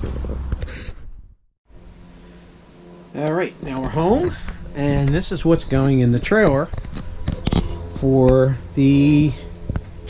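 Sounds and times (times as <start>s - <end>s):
low rumble: 1.7s - 10.0s.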